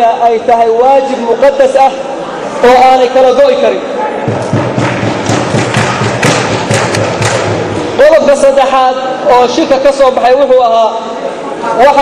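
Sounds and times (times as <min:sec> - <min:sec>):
audience clapping in rhythm: 0:04.4 - 0:07.7.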